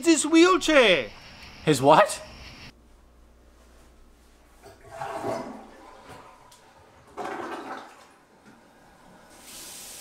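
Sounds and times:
water splashing in sink: 0:04.6 - 0:08.5.

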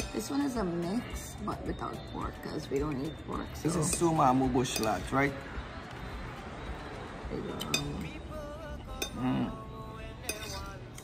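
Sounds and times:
background music: 0:00.0 - 0:11.0
forks clinking on plates: 0:03.7 - 0:05.2, 0:07.5 - 0:08.2, 0:10.2 - 0:11.0.

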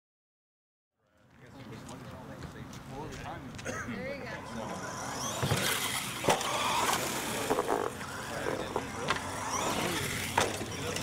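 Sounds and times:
rc truck motor running: 0:04.4 - 0:11.0.

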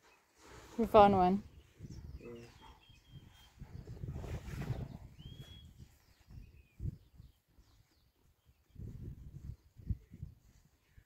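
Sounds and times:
high bird chirps: 0:01.5 - 0:03.6, 0:04.8 - 0:08.1.

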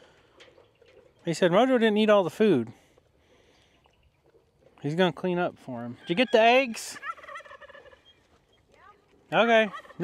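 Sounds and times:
turkey gobbling: 0:06.0 - 0:08.6, 0:09.6 - 0:10.0.

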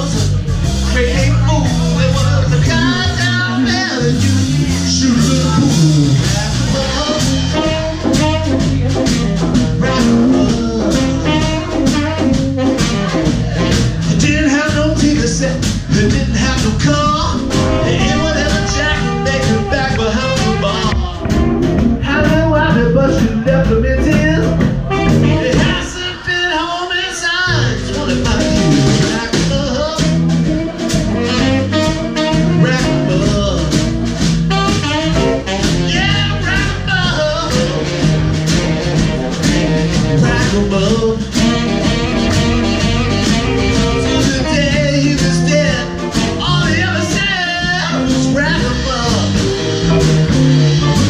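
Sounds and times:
live band playing: 0:00.0 - 0:51.0
bending lead line: 0:00.7 - 0:26.4, 0:27.5 - 0:51.0.

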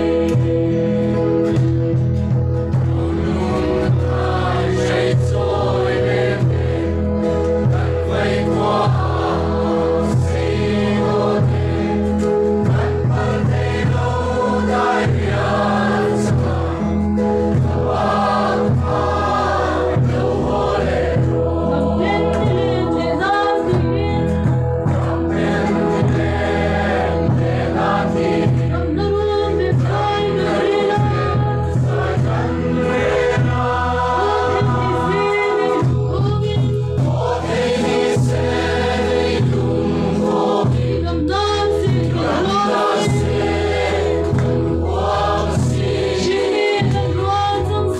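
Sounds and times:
group singing a hymn: 0:00.0 - 0:47.9
low instrumental accompaniment: 0:00.0 - 0:47.9.

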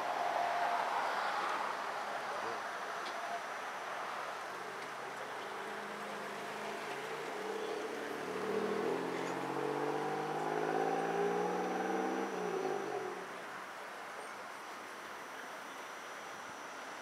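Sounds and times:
vehicle engine accelerating: 0:06.0 - 0:13.3.

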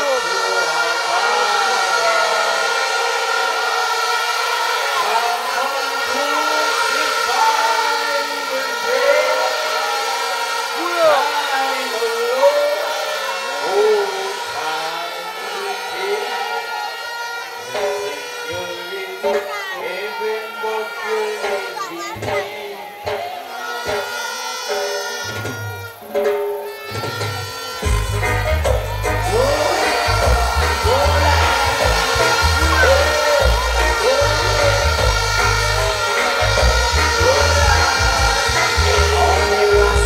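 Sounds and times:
music: 0:00.0 - 0:40.0
steady held tones: 0:00.0 - 0:40.0.

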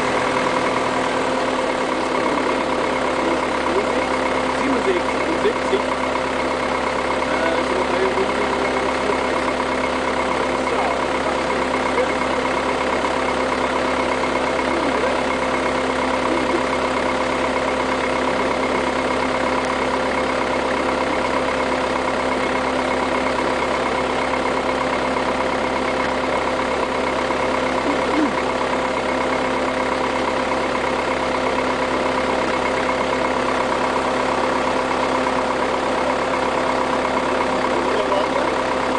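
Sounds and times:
crane engine idling: 0:00.0 - 0:38.9.

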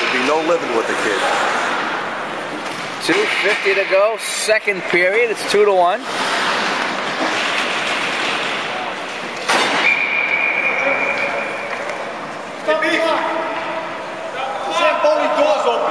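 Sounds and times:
skating on ice: 0:00.0 - 0:04.0, 0:04.6 - 0:12.0
referee's whistle blast: 0:09.7 - 0:11.6.

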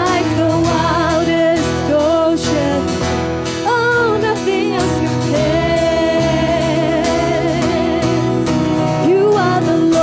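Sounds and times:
acoustic guitar: 0:00.0 - 0:10.0
keyboard: 0:00.0 - 0:10.0
women singing in harmony: 0:00.0 - 0:10.0.

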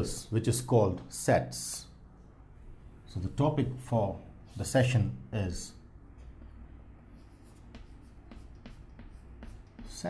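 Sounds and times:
low steady hum: 0:00.0 - 0:10.0
chalk scratching on chalkboard: 0:06.4 - 0:10.0.

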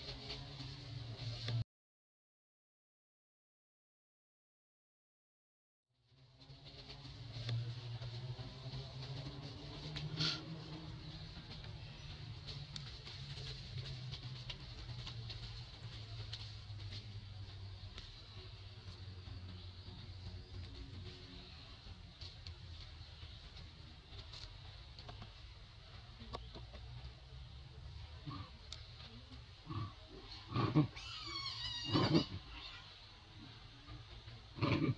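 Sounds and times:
steady low hum: 0:06.0 - 0:31.0.

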